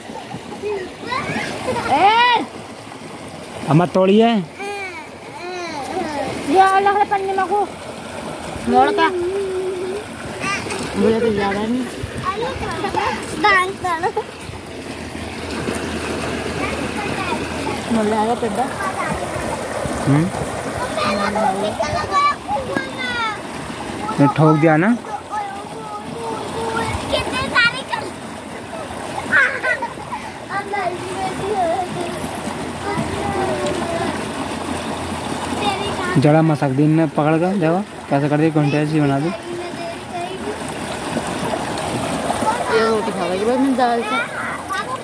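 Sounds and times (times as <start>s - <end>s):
children calling and talking: 0.0s - 2.7s, 4.5s - 7.8s, 8.6s - 36.2s, 38.5s - 45.0s.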